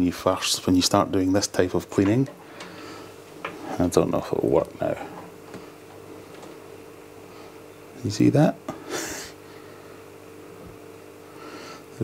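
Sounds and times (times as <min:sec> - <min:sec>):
aquarium equipment humming: 0:00.0 - 0:12.0
soft breath: 0:02.4 - 0:03.2, 0:11.2 - 0:11.9.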